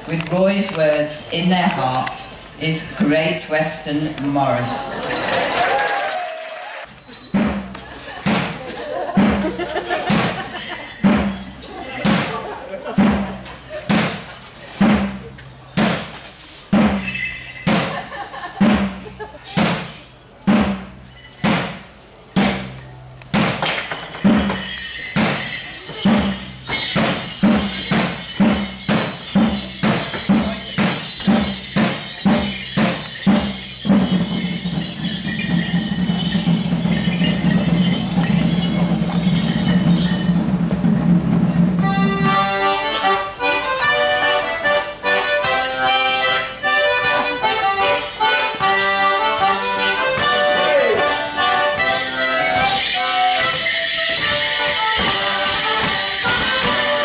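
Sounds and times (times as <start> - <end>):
accordion band playing dance tune: 0.0 - 5.3, 41.5 - 57.0
jingling bells: 0.0 - 5.9, 6.8 - 14.5, 15.2 - 57.0
drum beating: 7.3 - 57.0.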